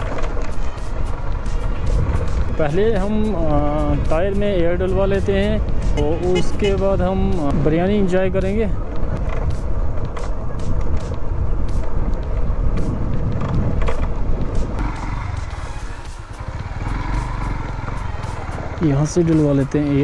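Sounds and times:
motorcycle engine rumble: 0.0s - 20.0s
wind on camera microphone: 7.5s - 14.8s.

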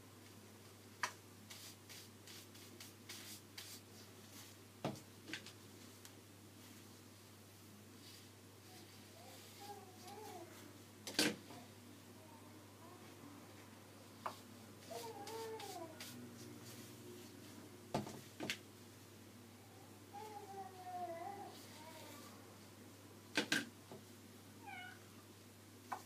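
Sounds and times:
faint low hum: 0.0s - 26.0s
cat meow: 24.6s - 25.0s.

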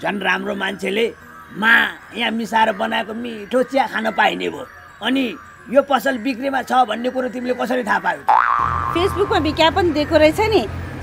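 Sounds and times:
man speaking: 0.0s - 8.3s
comic boing sound effect: 8.3s - 9.6s.

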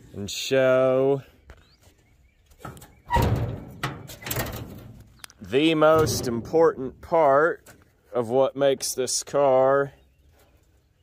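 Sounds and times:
metal clunks and scraping: 2.5s - 8.1s.

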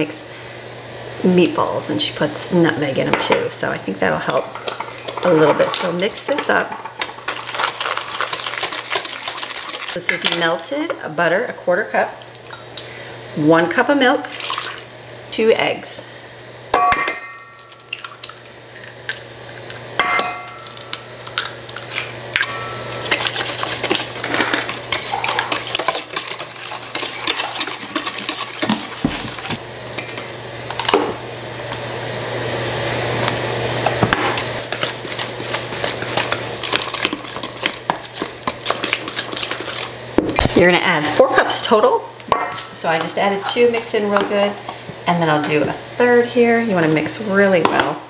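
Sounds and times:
whisk scraping metal bowl: 4.6s - 10.0s, 22.4s - 29.6s, 34.4s - 40.0s
eggs knocking on metal bowl: 16.8s - 18.3s, 20.0s - 21.0s.

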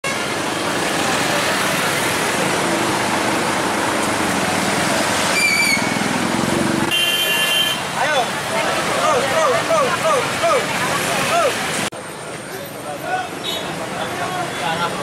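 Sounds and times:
crowd din: 6.0s - 15.0s.

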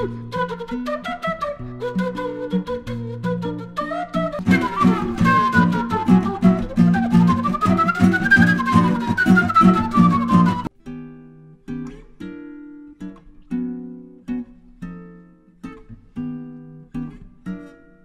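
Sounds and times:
flute sliding melody: 0.0s - 10.7s
classical guitar strummed: 0.0s - 18.0s
guitar single plucked notes: 4.3s - 18.0s.

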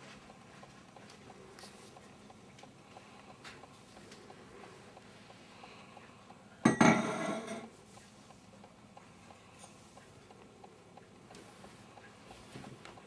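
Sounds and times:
metal lamp clinking on wooden table: 6.7s - 7.7s.

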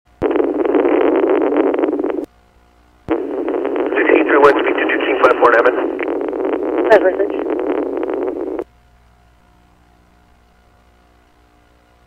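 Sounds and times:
radio static hiss: 0.1s - 8.7s
indistinct voice over radio: 3.9s - 6.0s, 6.8s - 7.5s.

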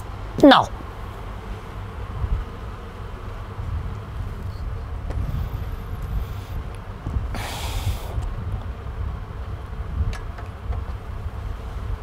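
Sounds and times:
low room hum: 0.0s - 12.0s
faint hiss: 7.3s - 8.4s.

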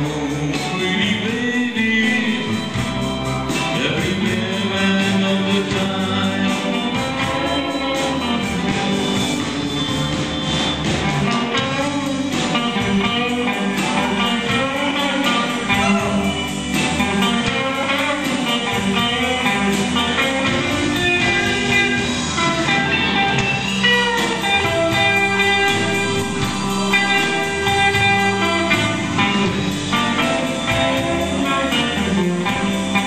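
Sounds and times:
bass guitar: 0.0s - 33.0s
drums: 0.0s - 33.0s
electric guitar lead: 0.0s - 33.0s
keyboards: 0.0s - 33.0s.

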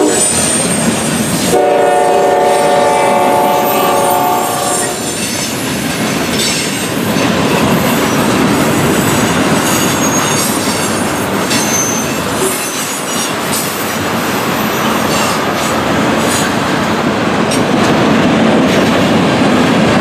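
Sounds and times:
train wheels rumbling and rattling: 0.0s - 20.0s
high wheel squeal: 9.0s - 13.9s.

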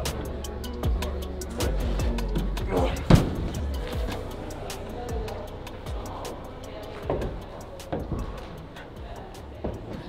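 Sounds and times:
music with steady beat: 0.0s - 10.0s
heavy thump on crash mat: 3.0s - 3.6s.

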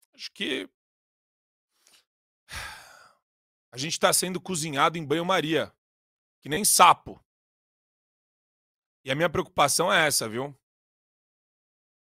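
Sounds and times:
man speaking: 0.1s - 0.7s, 3.8s - 5.8s, 6.5s - 7.2s, 9.1s - 10.6s
man drawing quick breath: 1.8s - 3.2s.

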